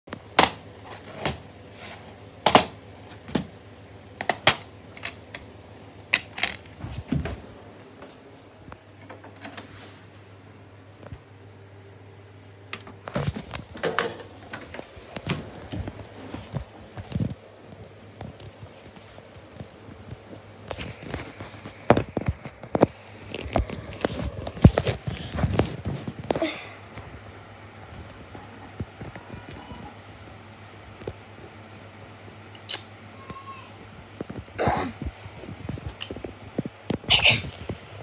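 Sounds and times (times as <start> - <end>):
clicks and handling noise: 2.5 - 5.5, 6.1 - 10.2, 12.6 - 27.3.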